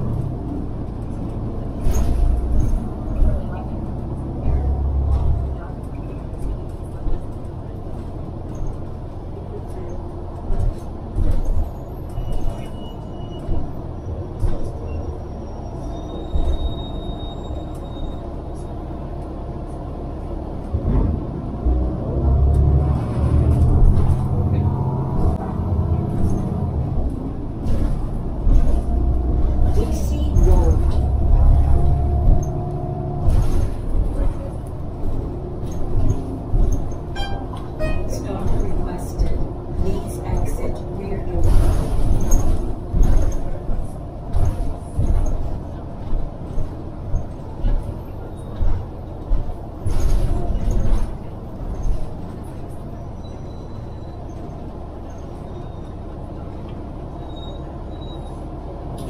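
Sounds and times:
bus engine and road rumble: 0.0 - 59.0
body rattles and clicks: 5.0 - 12.7, 26.1 - 52.8.

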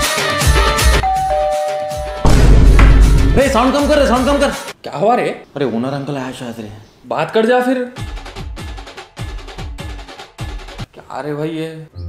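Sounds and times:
heavy bass drum dropping in pitch: 2.2 - 4.0.

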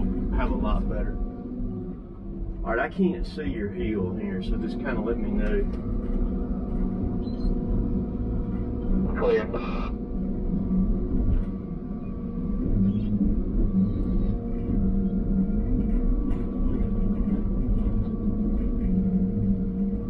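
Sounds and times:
hydraulic whine: 0.0 - 20.0
low diesel engine drone: 0.0 - 20.0.

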